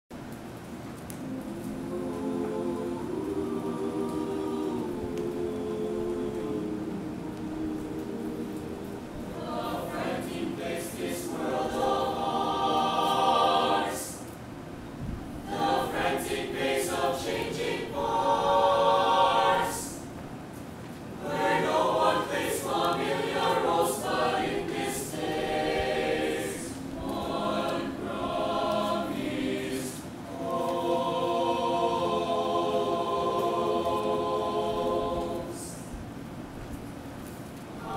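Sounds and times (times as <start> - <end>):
mixed choir singing: 1.2 - 14.4, 15.3 - 20.2, 21.1 - 36.1.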